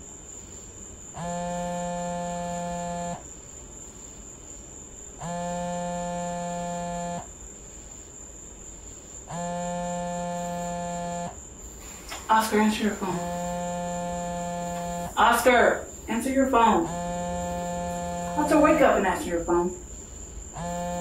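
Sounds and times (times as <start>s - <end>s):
electronic phone ring tone: 16.6s - 18.9s.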